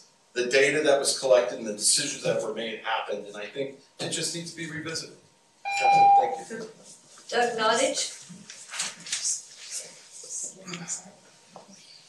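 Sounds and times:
person speaking: 0.4s - 5.1s, 5.7s - 11.9s
electronic beep: 5.7s - 6.5s.

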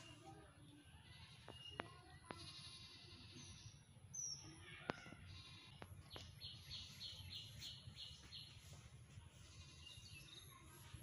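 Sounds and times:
faint bird chirps: 0.0s - 8.8s.

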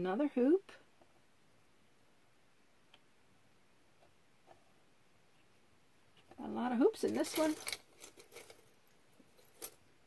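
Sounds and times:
metal jewelry clinking: 7.0s - 9.9s.

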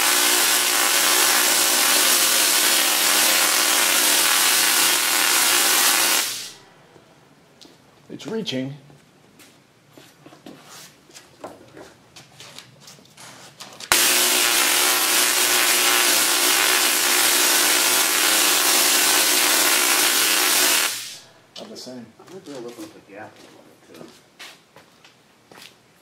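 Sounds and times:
tesla coil buzzing crackle: 0.0s - 6.6s, 13.9s - 21.3s.

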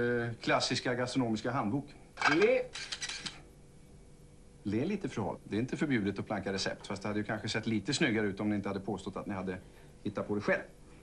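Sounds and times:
cutlery and dishes clattering: 2.2s - 3.4s.

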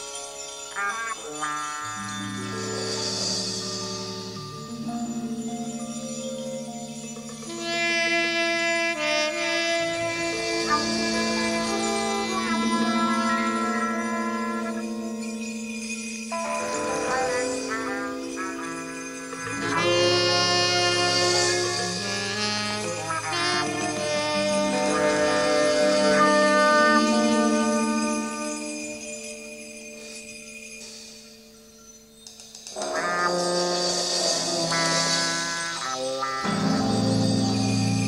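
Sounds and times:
jazz-fusion band sustained chord: 1.2s - 29.1s, 32.8s - 38.0s.

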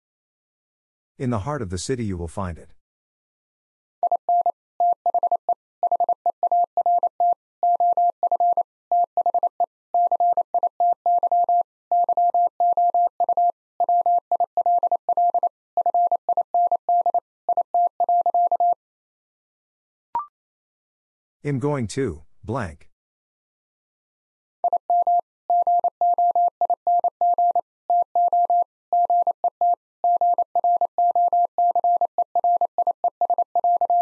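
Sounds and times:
morse code tone: 24.6s - 34.0s.

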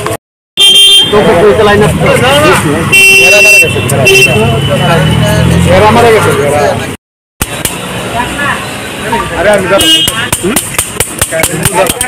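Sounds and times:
outdoor background noise: 0.9s - 12.0s
people talking: 1.0s - 7.0s, 8.0s - 12.0s.

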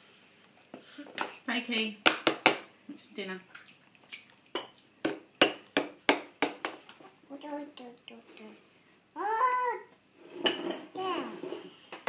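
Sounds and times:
toddler vocalizing: 9.2s - 9.9s, 11.0s - 11.6s
tableware clinking on wooden table: 10.3s - 11.7s.

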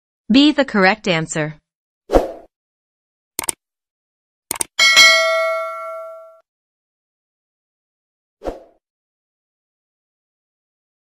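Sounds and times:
bell chime ding: 4.8s - 6.4s.

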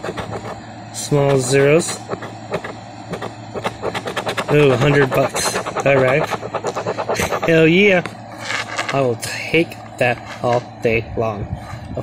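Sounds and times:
coin scraping lottery ticket: 0.0s - 9.1s.

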